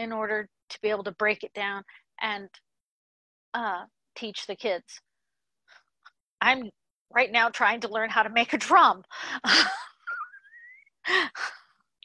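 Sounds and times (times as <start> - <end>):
woman laughing breathily: 9.2 - 11.7.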